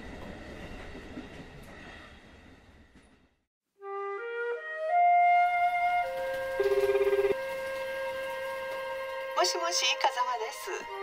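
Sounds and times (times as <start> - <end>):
held woodwind note: 3.8 - 9.5
telephone ringing warble: 6.6 - 7.4.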